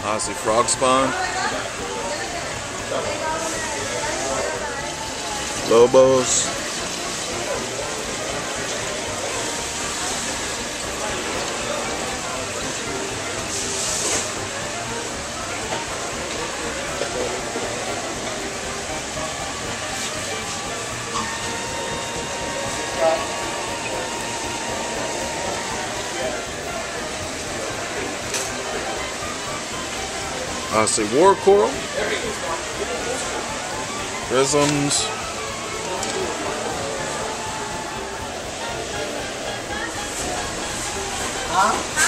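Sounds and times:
faint indistinct voices: 0.0s - 42.0s
water rushing through tanks: 0.0s - 42.0s.

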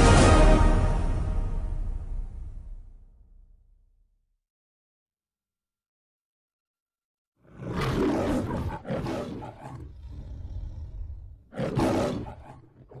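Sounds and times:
lion growl: 7.4s - 13.0s
lion roaring: 7.4s - 13.0s.

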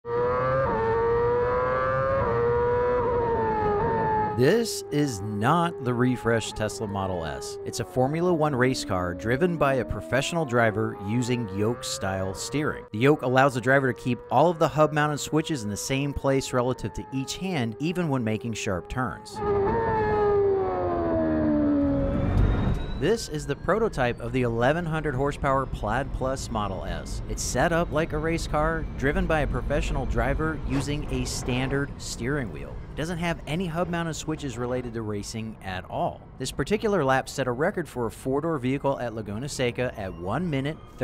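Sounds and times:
race car engine at high revs: 0.0s - 4.9s, 19.4s - 22.8s
racing car engine: 0.0s - 36.9s.

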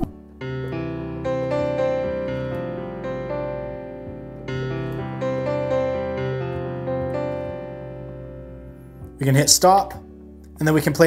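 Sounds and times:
piano chords and notes: 0.0s - 11.0s.

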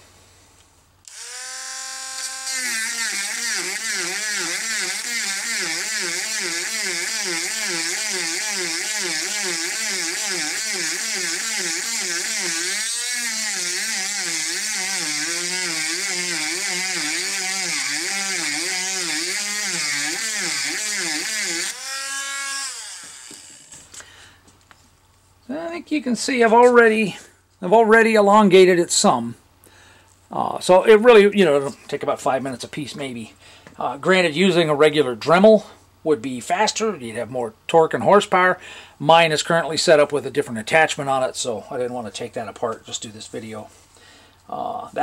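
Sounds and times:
rotary tool grinding metal: 1.1s - 23.9s.

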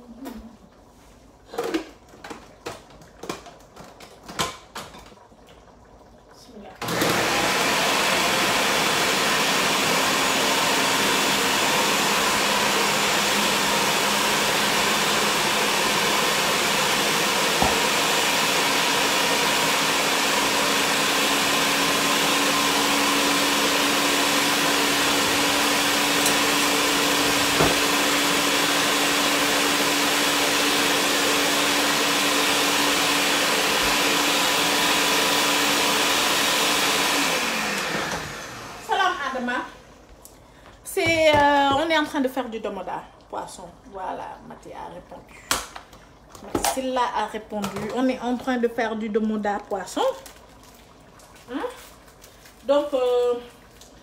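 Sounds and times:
electric appliance motor humming: 6.8s - 39.8s.

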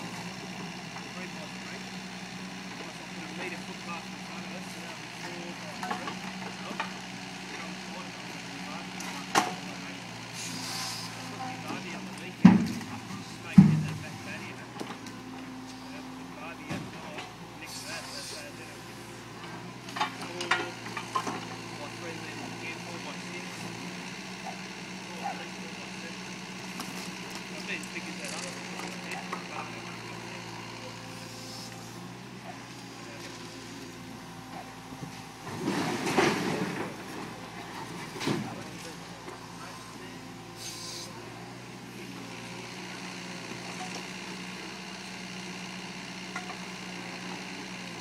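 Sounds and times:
excavator diesel engine running: 0.0s - 48.0s
short hydraulic hiss: 10.4s - 11.1s, 40.6s - 41.1s.

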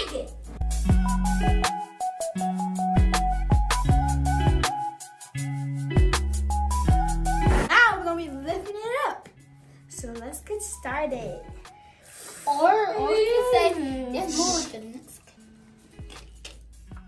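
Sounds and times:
background music with bass line: 0.0s - 8.4s, 16.0s - 17.0s
children's voices: 12.3s - 15.2s.

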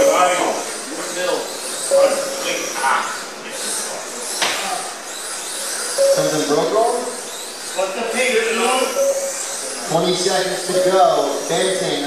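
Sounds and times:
people talking: 0.0s - 5.0s, 6.0s - 7.2s, 7.8s - 12.0s
rc car motors whining: 0.0s - 12.0s.

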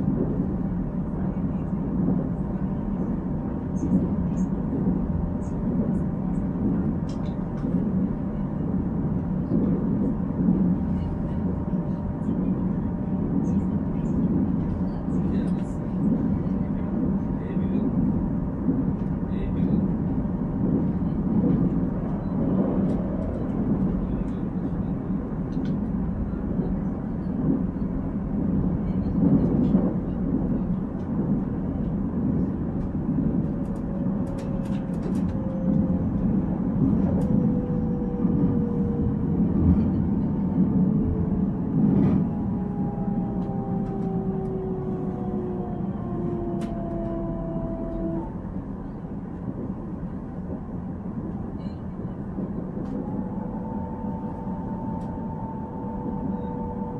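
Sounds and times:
train cabin rumble: 0.0s - 56.9s.

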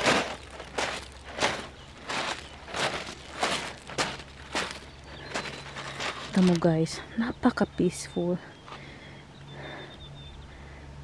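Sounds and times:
footsteps crunching on gravel: 0.0s - 7.2s.

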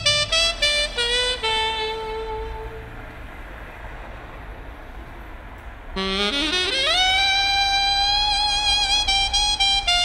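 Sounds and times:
saxophone note: 0.0s - 3.0s, 6.0s - 10.0s.

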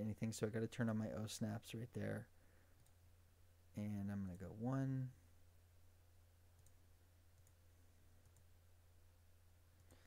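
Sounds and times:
computer mouse clicking: 6.6s - 6.8s, 7.4s - 7.6s, 8.2s - 8.5s, 9.8s - 10.0s.

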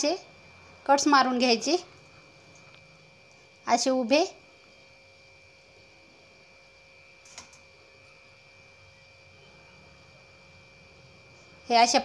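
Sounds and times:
steady electrical hum: 0.0s - 12.0s.

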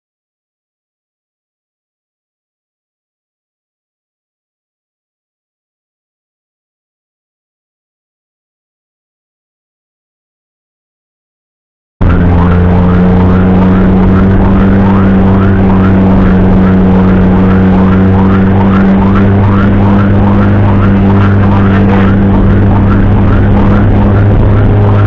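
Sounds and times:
low vehicle drone: 12.0s - 25.0s.

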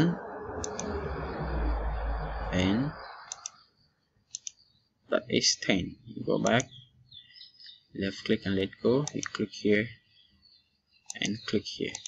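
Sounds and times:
low rumble: 0.0s - 3.9s
computer mouse clicks: 0.6s - 1.0s, 3.2s - 3.6s, 4.3s - 4.6s, 9.0s - 9.4s.

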